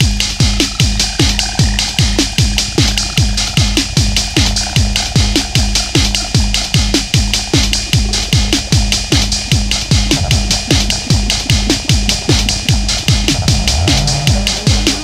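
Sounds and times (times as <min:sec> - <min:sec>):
hi-hat ticks: 0:00.0 - 0:15.0
low synth drone: 0:00.1 - 0:15.0.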